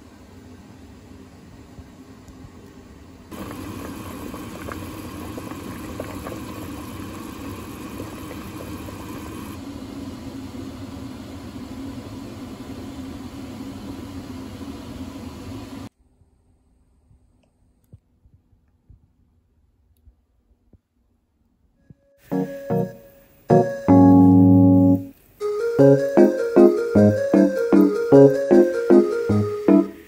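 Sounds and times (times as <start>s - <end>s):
mechanical hum with whirring: 0.0s - 19.6s.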